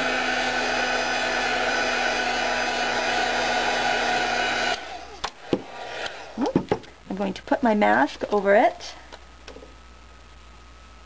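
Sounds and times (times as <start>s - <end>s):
heat gun blowing: 0.0s - 6.6s.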